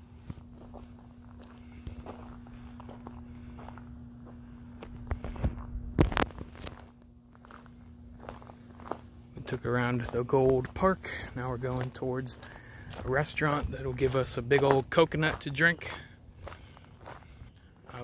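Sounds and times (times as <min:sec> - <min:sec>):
transformer hum: 0:00.0 - 0:18.0
footsteps: 0:00.2 - 0:18.0
person speaking: 0:09.4 - 0:16.1.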